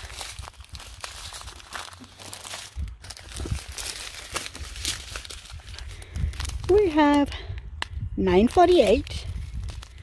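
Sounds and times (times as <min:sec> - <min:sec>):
plastic bags crinkling: 0:00.0 - 0:07.2, 0:08.4 - 0:10.0.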